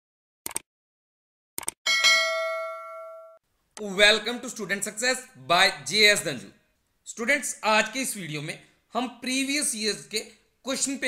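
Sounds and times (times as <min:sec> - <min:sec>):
bell chime notification: 0:01.9 - 0:03.4.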